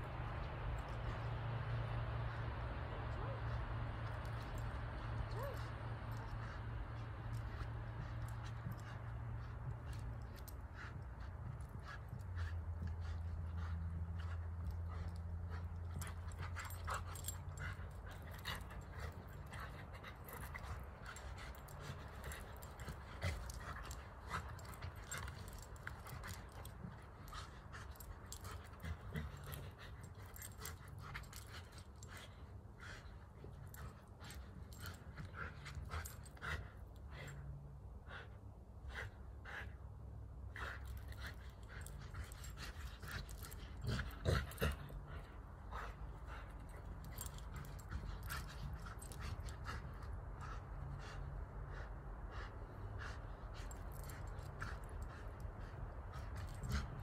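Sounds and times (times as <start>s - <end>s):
low steady hum: 0.0s - 57.0s
dog sounds: 5.0s - 32.2s.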